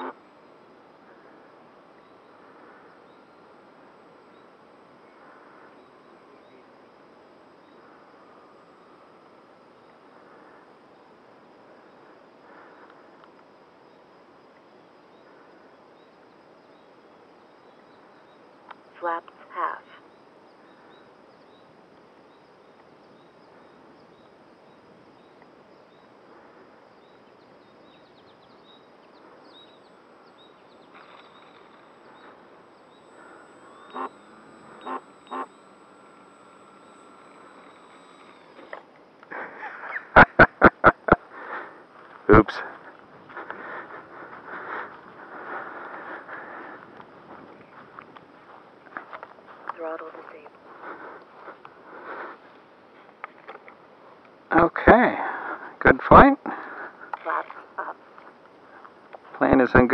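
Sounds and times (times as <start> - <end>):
rustling on grass: 30.8 - 35.8.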